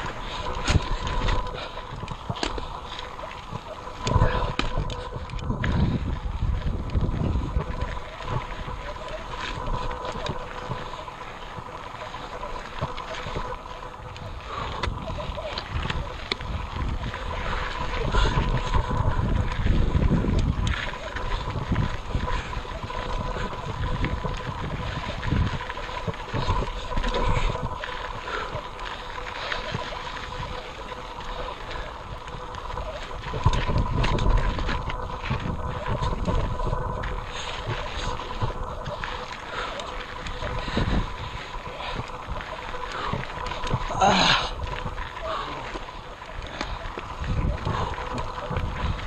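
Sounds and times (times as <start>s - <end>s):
bike tyres and frame knocking: 0.0s - 13.8s
faint steady whine: 0.0s - 49.0s
wind buffeting microphone: 0.0s - 49.0s.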